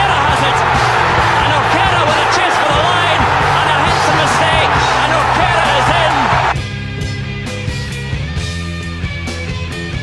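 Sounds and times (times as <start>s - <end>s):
stadium crowd cheering: 0.0s - 6.6s.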